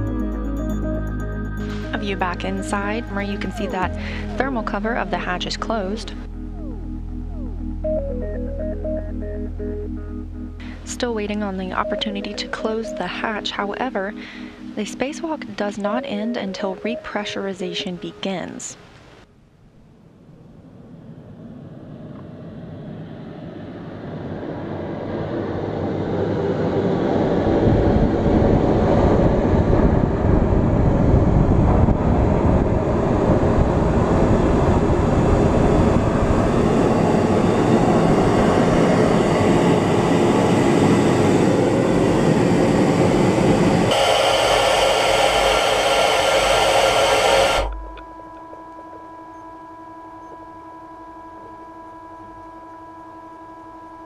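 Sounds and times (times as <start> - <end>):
steady hum: 0.0 - 54.0
air hissing into airlock: 43.9 - 47.7.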